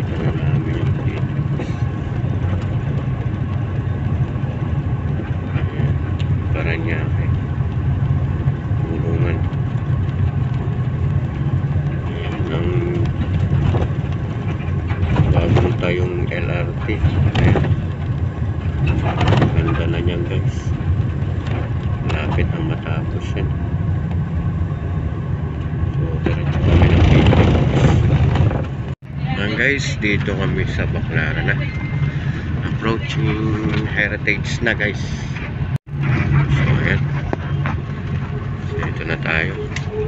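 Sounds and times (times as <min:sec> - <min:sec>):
indistinct voices: 0:00.0 - 0:02.6, 0:05.2 - 0:07.4, 0:08.6 - 0:09.6, 0:11.9 - 0:17.8, 0:18.9 - 0:20.8, 0:21.4 - 0:23.6, 0:29.0 - 0:40.0
bus engine and tyres rumbling: 0:00.0 - 0:40.0.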